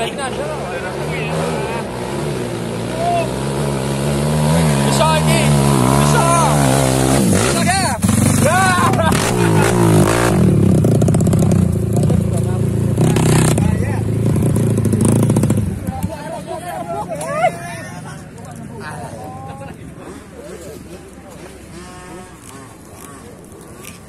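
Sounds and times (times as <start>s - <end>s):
dirt bike engine revving hard: 0.0s - 16.0s, 19.9s - 24.0s
people shouting: 2.8s - 3.5s.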